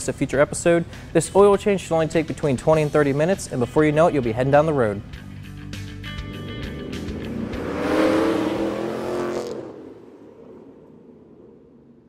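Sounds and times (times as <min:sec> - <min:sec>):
music: 0:00.0 - 0:08.0
car engine revving past: 0:05.8 - 0:12.0.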